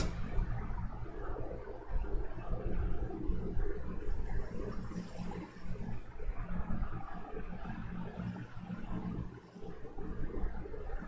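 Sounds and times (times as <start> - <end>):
low steady room rumble: 0.0 - 11.0.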